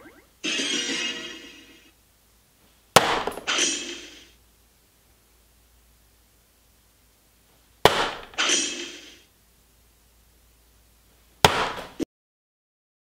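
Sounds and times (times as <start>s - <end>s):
electronic dartboard sound burst: 0.0s - 1.2s
darts hitting electronic dartboard: 3.0s - 3.7s, 7.8s - 8.6s, 11.4s - 12.0s.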